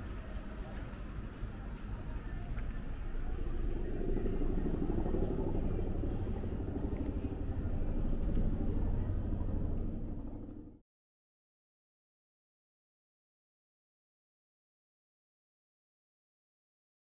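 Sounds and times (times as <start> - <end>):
steady low street rumble: 0.0 - 10.8.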